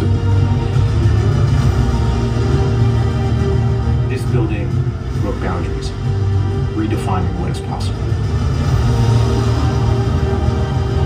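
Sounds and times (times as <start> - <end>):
dramatic film music with bass drone: 0.0 - 11.0.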